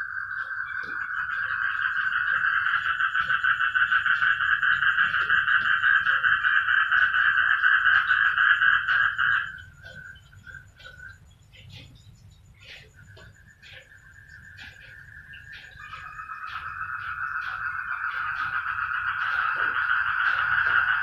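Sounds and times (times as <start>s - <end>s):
frogs trilling in chorus: 0.0s - 21.0s.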